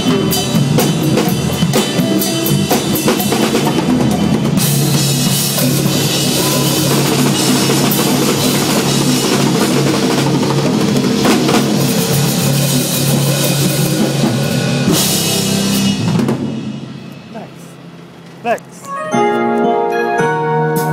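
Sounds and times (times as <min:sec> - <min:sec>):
live band playing gospel song: 0:00.0 - 0:16.2
cymbal crash: 0:04.6 - 0:17.5
brief rising sound: 0:06.0 - 0:09.0.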